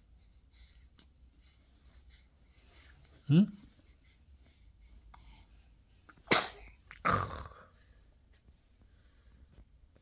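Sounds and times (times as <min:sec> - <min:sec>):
person sneezing: 0:06.2 - 0:07.4.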